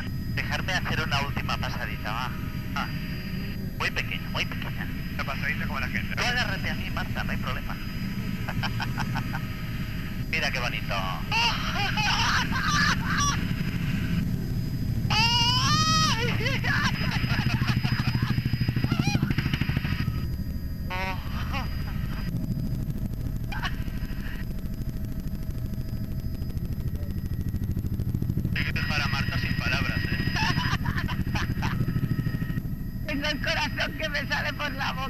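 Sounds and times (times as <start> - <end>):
helicopter rotor and turbine: 0.0 - 35.0
woman laughing excitedly: 11.4 - 13.4, 15.2 - 18.4, 30.4 - 31.8.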